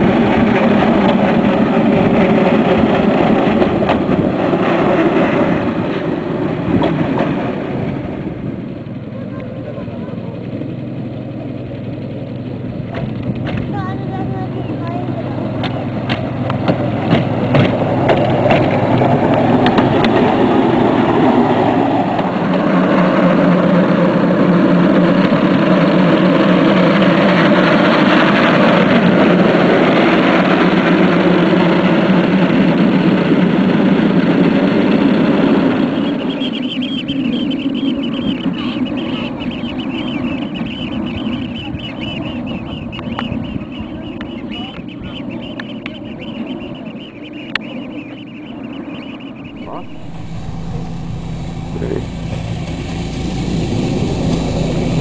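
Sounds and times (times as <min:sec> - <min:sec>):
small rail vehicle engine passing: 0:00.0 - 0:55.0.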